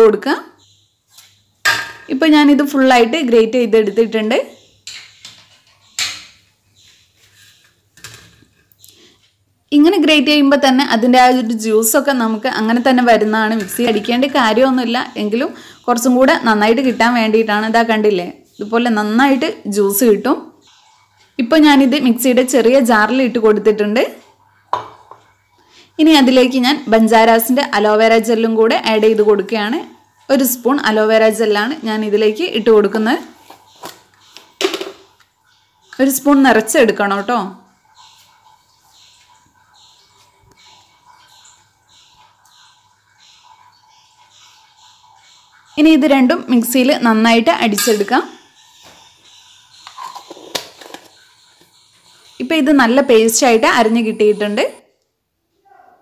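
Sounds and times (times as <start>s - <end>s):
woman speaking: 0.0s - 0.6s, 2.1s - 4.6s, 9.7s - 20.5s, 26.0s - 33.3s, 36.0s - 37.6s, 45.8s - 48.4s, 52.4s - 54.8s
steel kitchenware clink: 47.7s - 48.4s.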